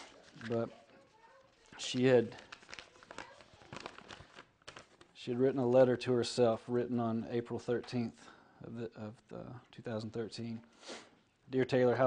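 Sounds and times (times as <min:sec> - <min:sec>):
paper rustling and crinkling: 0:00.0 - 0:05.2.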